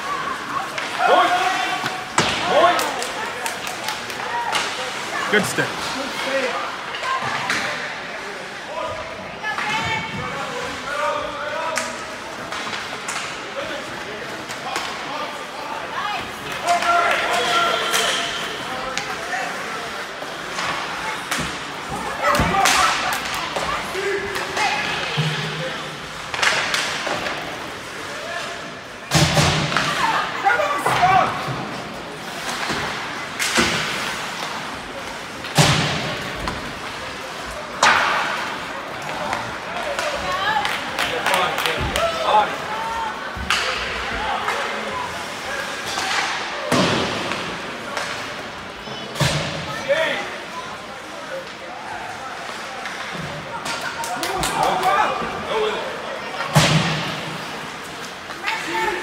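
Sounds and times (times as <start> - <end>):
pucks slamming against boards: 1.7 - 3.2, 20.5 - 25.6, 29.1 - 30.1, 32.4 - 37.0, 37.7 - 42.2, 45.8 - 48.3, 56.4 - 57.6
sticks hitting puck: 20.5 - 25.4, 37.7 - 42.2.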